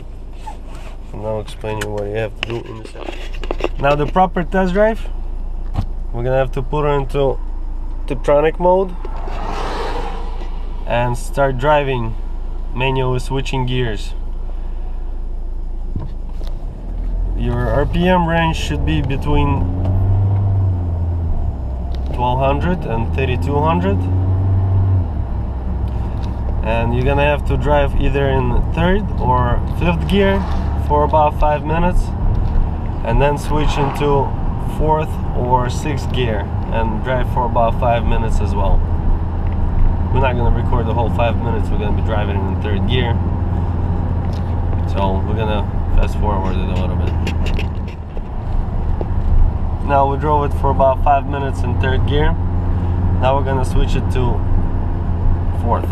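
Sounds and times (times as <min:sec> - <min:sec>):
car engine pulling steadily: 0:00.0 - 0:55.9
road and tyre noise: 0:00.0 - 0:55.9.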